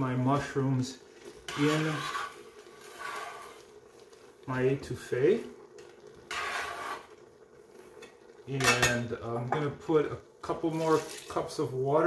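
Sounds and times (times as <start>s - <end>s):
metal scraper on wooden board: 6.3s - 7.0s.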